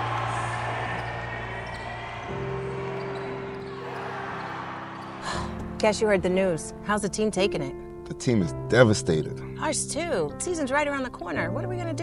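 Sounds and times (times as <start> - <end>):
crowd cheering: 0.0 - 5.8.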